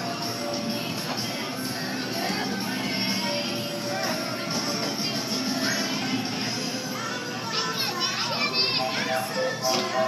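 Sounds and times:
background music: 0:00.0 - 0:10.0
children chattering and calling out: 0:05.4 - 0:10.0.

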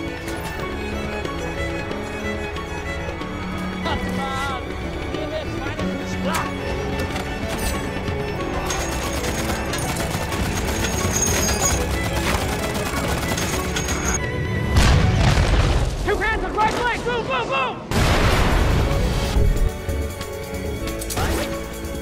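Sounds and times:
music: 0:00.0 - 0:17.0, 0:17.9 - 0:22.0
explosions: 0:14.7 - 0:16.1, 0:17.9 - 0:19.4.

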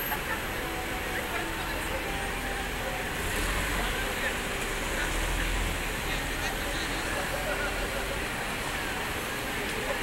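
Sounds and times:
crowd chatter: 0:00.0 - 0:10.0
traffic noise: 0:00.0 - 0:10.0.

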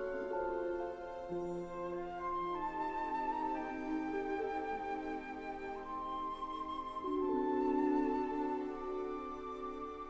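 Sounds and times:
flute melody: 0:00.0 - 0:10.0
soft sustained orchestral chords: 0:00.0 - 0:10.0.

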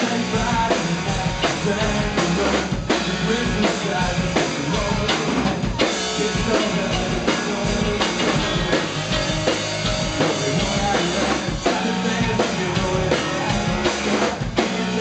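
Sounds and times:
bass guitar: 0:00.0 - 0:15.0
drum kit beating: 0:00.0 - 0:15.0
electric guitars: 0:00.0 - 0:15.0.

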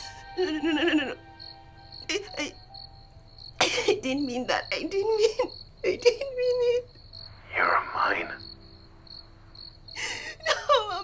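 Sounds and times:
woman crying: 0:00.0 - 0:01.2, 0:03.6 - 0:04.4, 0:10.0 - 0:11.0
crickets chirping: 0:00.0 - 0:11.0.

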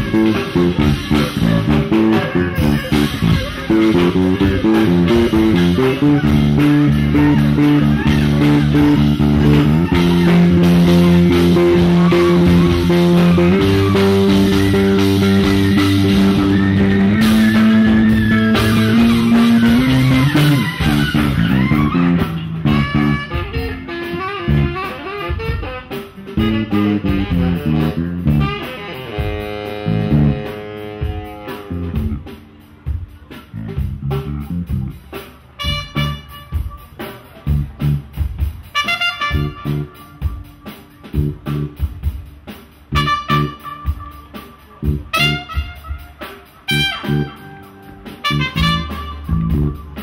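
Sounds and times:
electric bass sustained notes: 0:00.0 - 0:32.6, 0:33.5 - 0:38.2, 0:39.3 - 0:42.1, 0:42.8 - 0:50.0
tenor saxophone: 0:00.0 - 0:32.9, 0:35.5 - 0:37.8, 0:38.7 - 0:42.1, 0:42.8 - 0:50.0
live band music: 0:00.0 - 0:50.0.

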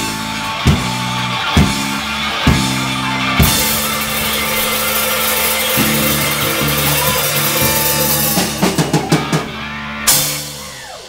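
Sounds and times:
live rock band playing: 0:00.0 - 0:11.0
hard drum hits: 0:03.4 - 0:10.4.

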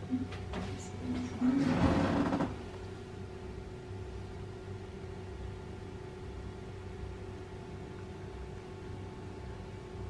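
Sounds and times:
faint constant tone: 0:00.0 - 0:10.0
electric suction machine humming: 0:01.4 - 0:02.8.

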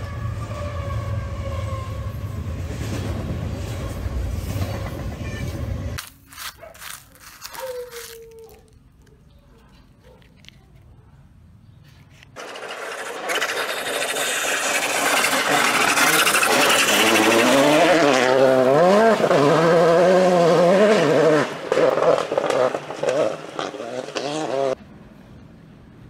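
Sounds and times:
rally car engine revving: 0:13.4 - 0:24.8.

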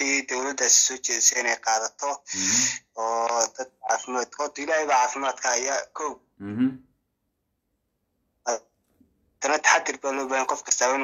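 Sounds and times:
man making short voiced sound: 0:06.4 - 0:06.8.

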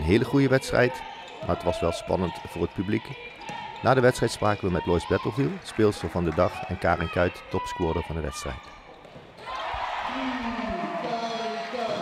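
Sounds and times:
basketball bouncing on court: 0:03.1 - 0:05.2.

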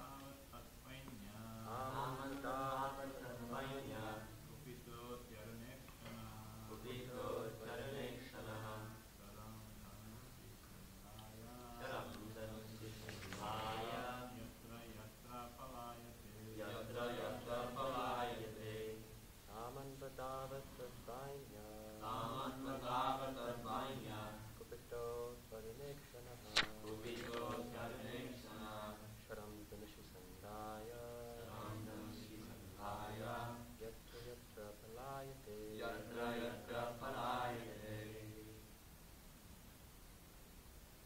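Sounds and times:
voices chanting: 0:00.0 - 0:10.2, 0:11.3 - 0:29.4, 0:30.4 - 0:38.6.

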